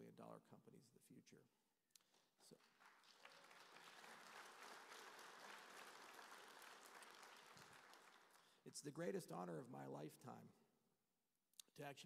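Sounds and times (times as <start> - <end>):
audience applauding: 2.1 - 8.6.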